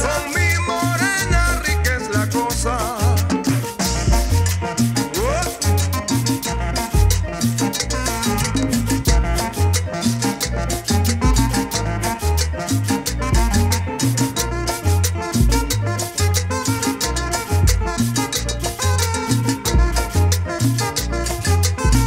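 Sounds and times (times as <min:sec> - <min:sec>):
instrumental cumbia music: 0:00.0 - 0:22.0.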